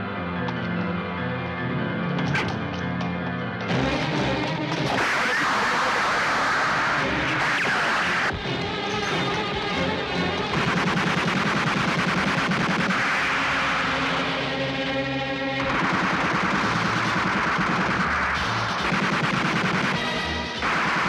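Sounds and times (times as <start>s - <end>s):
dramatic film score: 0.0s - 21.0s.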